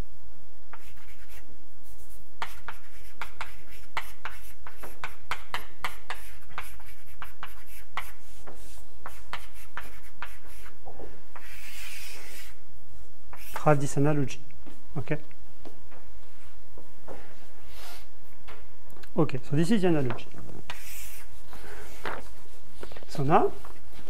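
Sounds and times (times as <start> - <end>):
steady low hum: 0.0 - 24.0
chalk tapping and scratching: 0.7 - 12.6, 13.3 - 14.0, 20.0 - 24.0.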